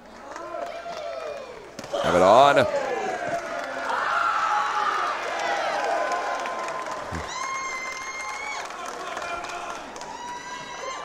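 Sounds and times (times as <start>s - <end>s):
crowd hubbub: 5.3s - 7.6s.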